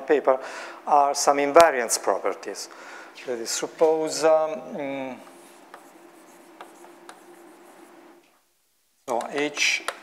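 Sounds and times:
chalk tapping on blackboard: 0:05.2 - 0:08.0, 0:09.1 - 0:10.0
chalk scratching on blackboard: 0:05.2 - 0:08.2.

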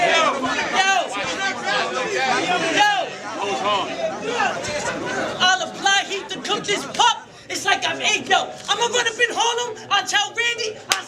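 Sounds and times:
men talking: 0:00.0 - 0:11.0
man rapping into microphone: 0:05.4 - 0:11.0.

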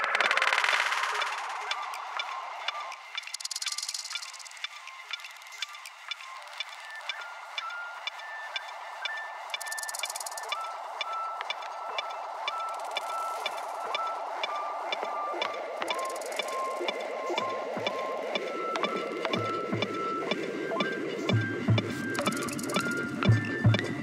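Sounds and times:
ticking electronic beat: 0:00.0 - 0:24.0.

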